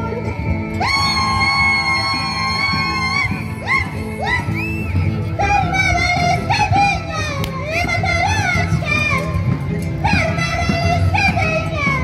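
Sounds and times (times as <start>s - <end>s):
carnival music: 0.0s - 12.0s.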